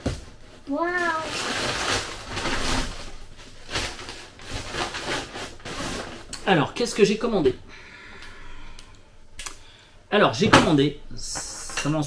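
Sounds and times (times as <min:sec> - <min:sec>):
paper and cardboard rustling: 0:00.0 - 0:07.5.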